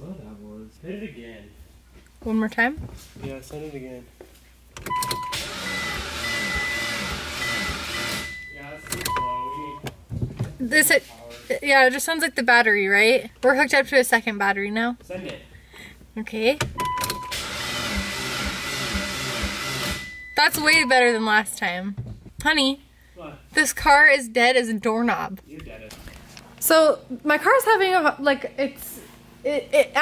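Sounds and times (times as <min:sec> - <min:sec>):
starter motor cranking engine: 0:04.8 - 0:09.2, 0:16.7 - 0:20.9
short steady beep: 0:04.9 - 0:09.8, 0:16.8 - 0:17.4, 0:19.8 - 0:21.2
car starter cranking slowly: 0:16.6 - 0:20.9.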